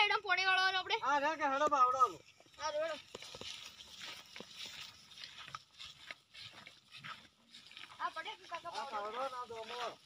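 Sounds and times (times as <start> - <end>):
footsteps on dirt and dry grass: 0.0 - 10.0.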